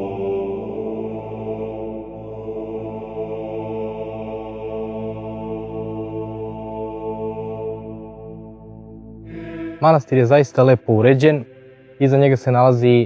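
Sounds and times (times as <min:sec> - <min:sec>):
slow chant-like drone music: 0:00.0 - 0:13.0.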